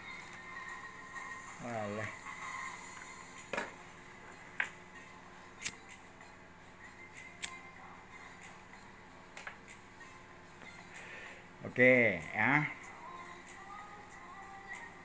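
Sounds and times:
faint music-like tones: 0:00.0 - 0:15.0.

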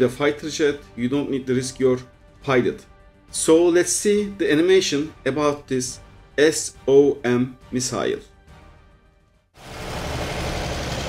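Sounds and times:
vehicle engine rumble with hiss: 0:09.6 - 0:11.0.

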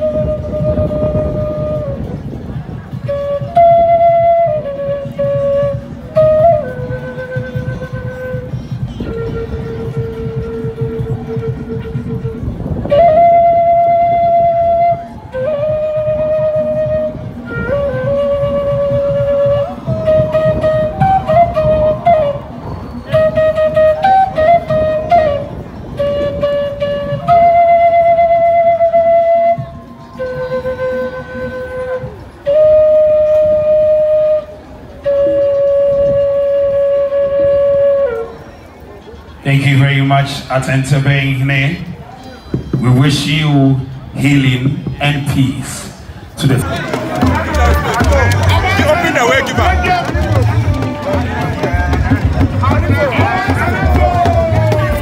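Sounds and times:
low pulsing accompaniment: 0:00.0 - 0:38.4, 0:46.5 - 0:55.0
flute-like long held notes: 0:00.0 - 0:39.4, 0:47.2 - 0:55.0.

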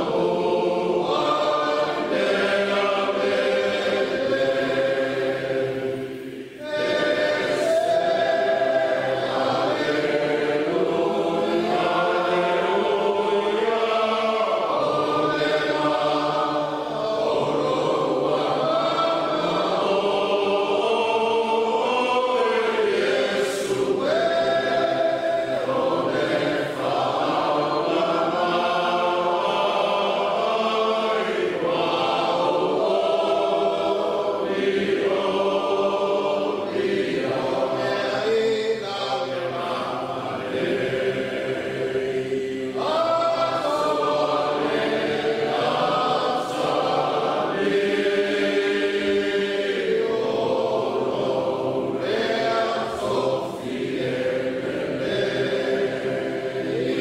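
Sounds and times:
choir singing long notes: 0:00.0 - 0:57.0.

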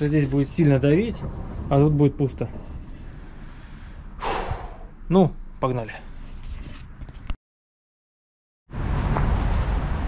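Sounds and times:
low background rumble: 0:00.0 - 0:06.3
man's quick breath: 0:03.0 - 0:04.9.

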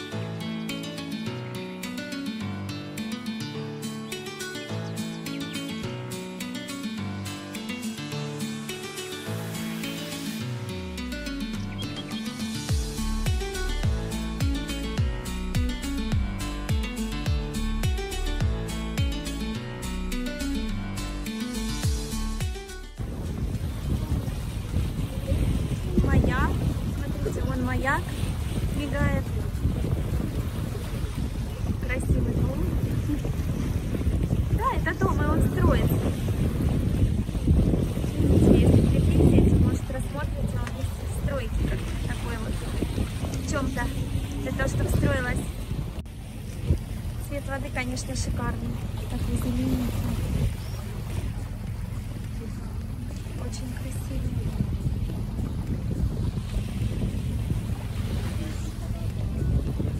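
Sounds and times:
boat low rumble: 0:00.0 - 0:59.9
wind noise on microphone: 0:21.8 - 0:59.9.

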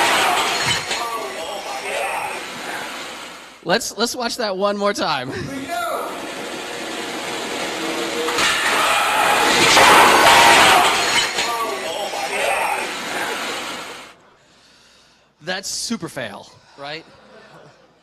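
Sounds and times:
elevator machine crashing and grinding: 0:00.0 - 0:03.6, 0:06.0 - 0:14.1.

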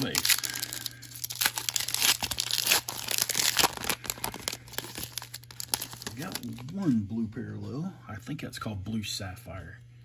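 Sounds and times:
foil wrapper tearing and crinkling: 0:00.0 - 0:06.8.

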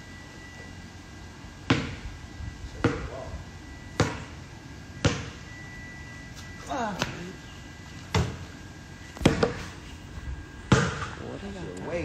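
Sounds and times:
outdoor background hiss: 0:00.0 - 0:12.0
basketball bouncing on concrete: 0:01.6 - 0:02.0, 0:02.7 - 0:03.3, 0:03.9 - 0:04.4, 0:05.0 - 0:05.4, 0:08.1 - 0:08.4, 0:09.2 - 0:09.7, 0:10.7 - 0:11.2.

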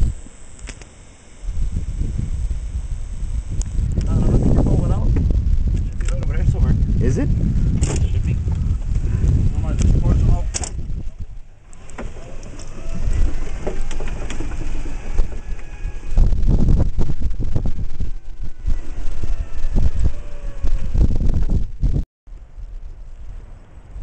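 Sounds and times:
wind buffeting microphone: 0:01.4 - 0:24.0
knocks and rattles from cart ride: 0:07.7 - 0:08.7, 0:10.3 - 0:18.2.

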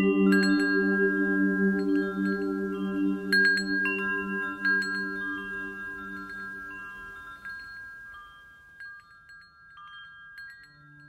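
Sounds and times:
metal wind chimes ringing: 0:00.0 - 0:11.0.

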